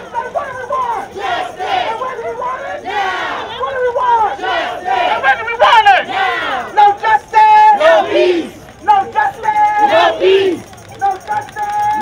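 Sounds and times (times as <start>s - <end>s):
crowd shouting chants: 0.0s - 10.7s.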